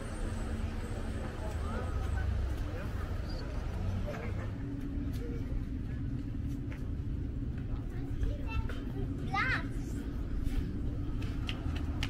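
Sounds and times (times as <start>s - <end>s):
faint voices: 0.0s - 12.0s
steady low rumble: 0.0s - 12.0s.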